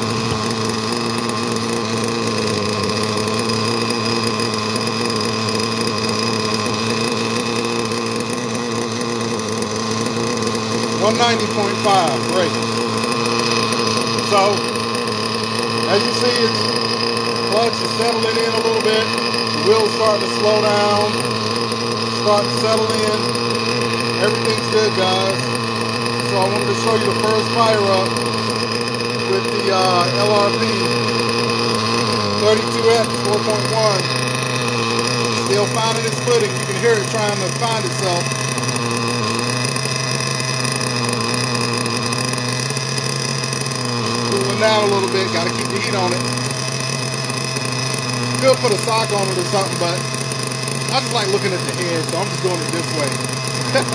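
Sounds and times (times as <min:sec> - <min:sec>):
model engine idling: 0:00.0 - 0:53.9.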